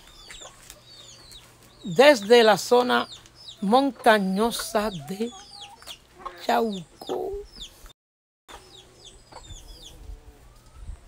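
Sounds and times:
chickens clucking: 0:00.0 - 0:07.9, 0:08.5 - 0:10.9.

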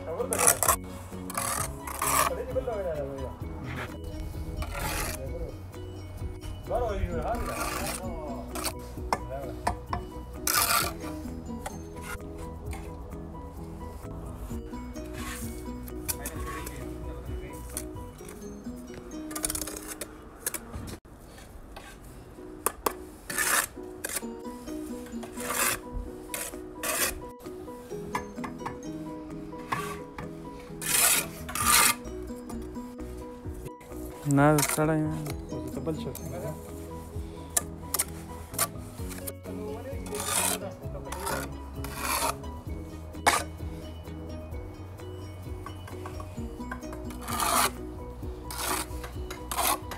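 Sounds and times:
background music: 0:00.0 - 0:21.0, 0:21.8 - 0:49.9
trowel scraping mortar on brick: 0:00.1 - 0:05.5, 0:07.0 - 0:13.0, 0:13.8 - 0:18.6, 0:19.2 - 0:28.8, 0:29.5 - 0:43.6, 0:46.1 - 0:49.9.

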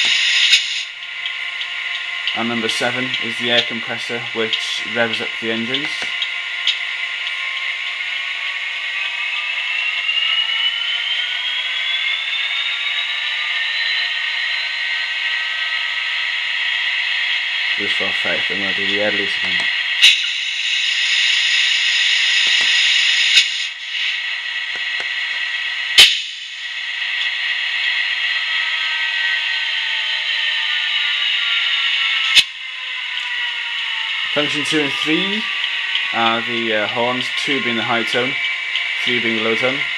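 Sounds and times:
diesel locomotive engine revving: 0:00.0 - 0:39.9
high hiss: 0:20.0 - 0:24.5.

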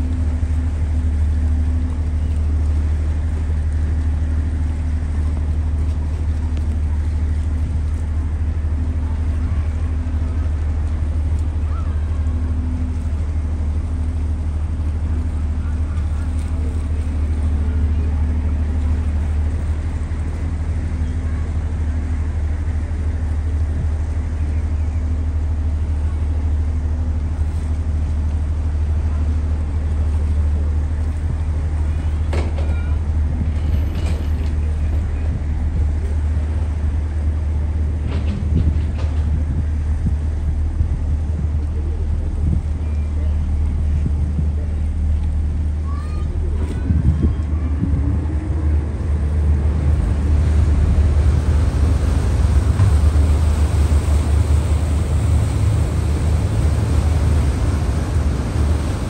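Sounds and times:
ship engine drone: 0:00.0 - 0:59.0.

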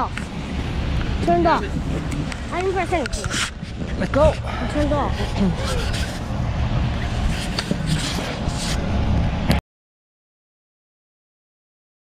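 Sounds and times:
wind buffeting microphone: 0:00.0 - 0:09.6
camera handling knocks and rubbing: 0:07.2 - 0:08.8.

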